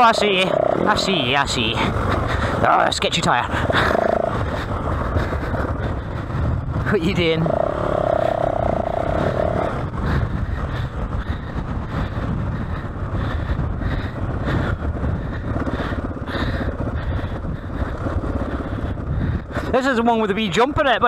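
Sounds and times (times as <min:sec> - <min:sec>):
higher hum: 0:00.0 - 0:11.2
dirt bike engine running: 0:00.0 - 0:21.0.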